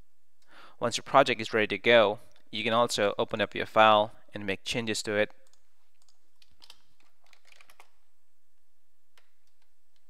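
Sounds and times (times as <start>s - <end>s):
faint keyboard typing: 5.3s - 8.1s, 9.2s - 10.0s.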